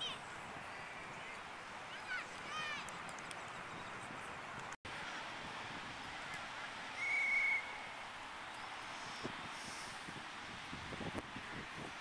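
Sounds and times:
faint wind: 0:00.0 - 0:12.0
whistle blown: 0:07.0 - 0:07.9.

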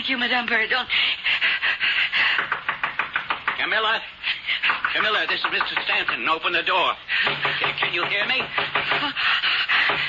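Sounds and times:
person panting: 0:00.9 - 0:02.6, 0:04.1 - 0:04.9, 0:08.5 - 0:10.0.

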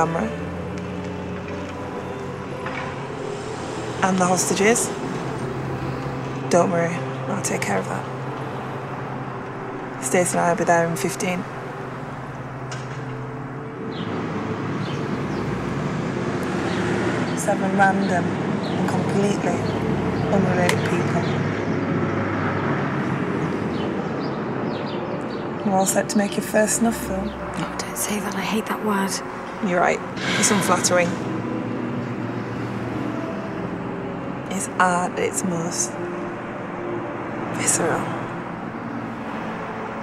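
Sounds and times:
road traffic rumble and hiss: 0:00.0 - 0:40.0.

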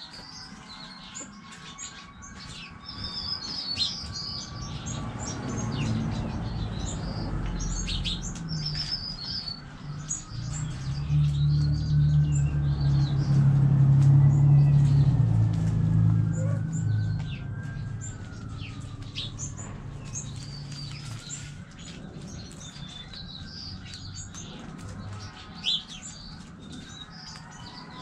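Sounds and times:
small birds chirping: 0:00.0 - 0:28.0.

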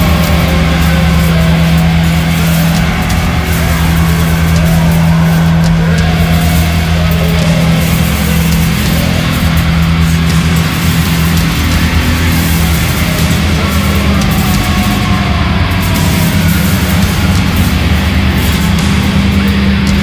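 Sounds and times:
distorted guitar: 0:00.0 - 0:20.0
drums: 0:00.0 - 0:20.0.

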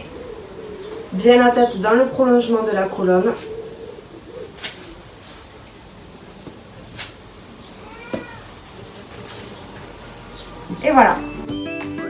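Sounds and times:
pigeon cooing: 0:00.0 - 0:11.4.

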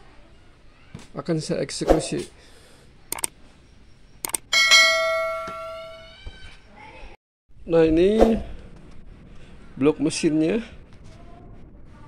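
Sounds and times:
mouse clicks: 0:03.1 - 0:03.3, 0:04.2 - 0:04.4
bell chime: 0:04.5 - 0:06.2.

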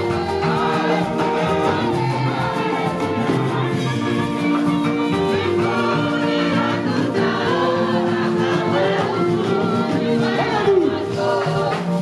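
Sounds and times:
gospel choir of women singing: 0:00.0 - 0:12.0.

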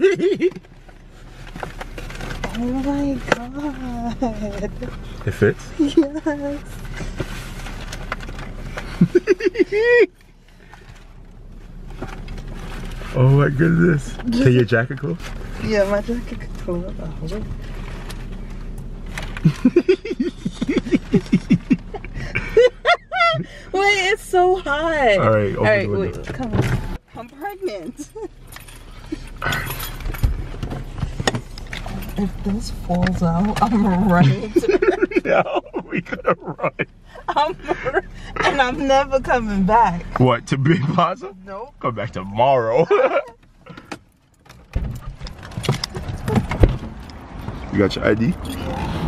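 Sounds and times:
person laughing: 0:00.0 - 0:00.6, 0:09.0 - 0:10.1, 0:19.4 - 0:23.7, 0:34.2 - 0:38.6, 0:42.8 - 0:43.4
soft rustling and handling noise: 0:00.6 - 0:19.7
sharp clicks and knocks: 0:43.4 - 0:47.7.

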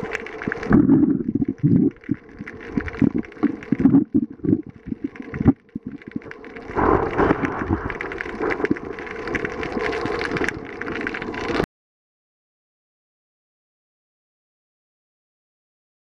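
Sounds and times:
water rushing: 0:00.0 - 0:11.6.

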